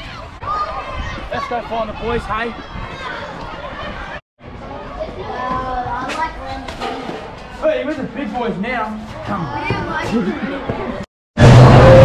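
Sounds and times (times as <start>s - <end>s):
boys talking: 0.0s - 11.1s.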